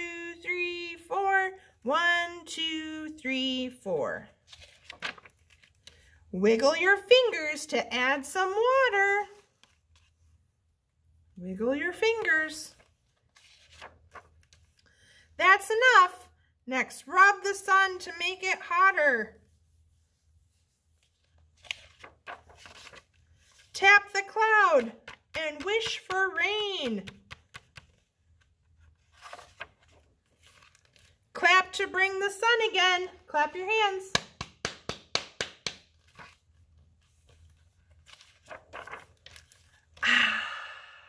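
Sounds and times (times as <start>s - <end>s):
paper page turning: 4.4s - 6.0s, 12.7s - 14.8s, 20.6s - 26.1s, 26.8s - 31.3s, 35.8s - 40.0s
person clapping hands: 34.2s - 35.8s.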